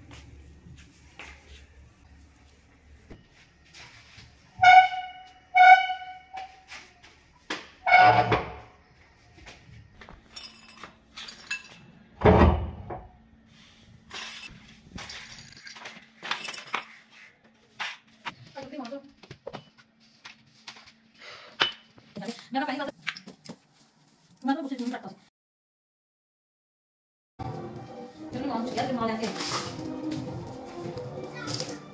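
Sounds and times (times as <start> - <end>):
broom sweeping tile floor: 0.0 - 8.2, 13.5 - 21.2, 27.4 - 31.9.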